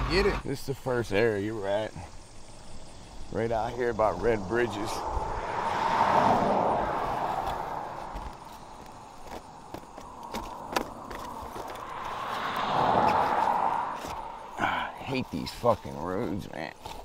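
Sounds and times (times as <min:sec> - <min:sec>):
cars passing on road: 0:00.0 - 0:00.5, 0:01.6 - 0:15.8.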